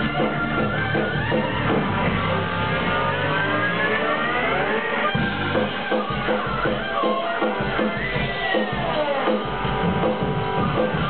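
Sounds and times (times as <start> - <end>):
electric guitar rising note: 0.0 - 6.9
bass and drums: 0.0 - 11.0.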